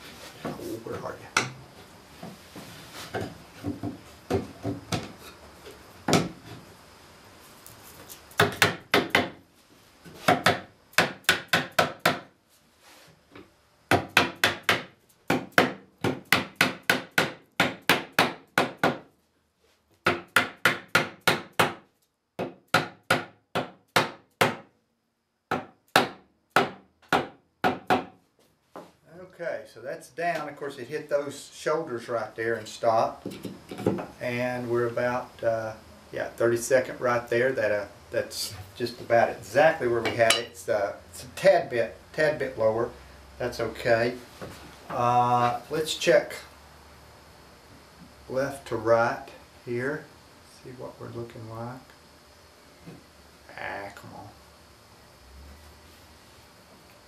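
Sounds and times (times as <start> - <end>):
hammer knocking wood: 3.2 - 5.1, 25.5 - 28.2.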